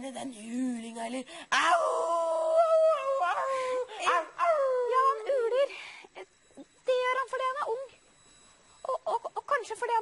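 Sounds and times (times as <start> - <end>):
boy imitating animal howl: 1.5 - 5.6.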